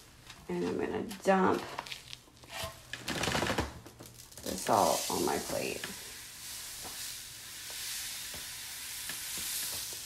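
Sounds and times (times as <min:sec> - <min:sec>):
salt pattering onto paper plate: 0:04.0 - 0:10.0.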